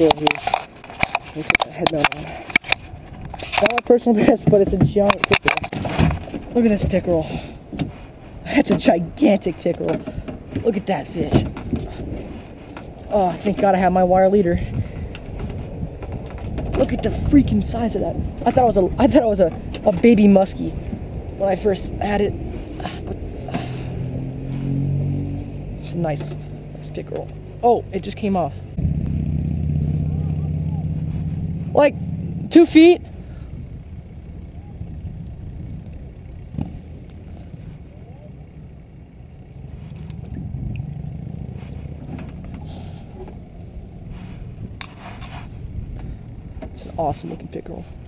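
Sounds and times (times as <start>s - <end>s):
light clicks and scrapes: 0.0s - 13.8s, 44.0s - 48.0s
engine droning: 0.0s - 48.0s
wind and water rumble: 0.0s - 48.0s.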